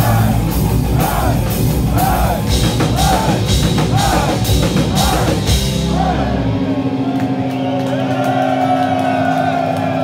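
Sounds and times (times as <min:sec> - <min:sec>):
drums: 0:00.0 - 0:10.0.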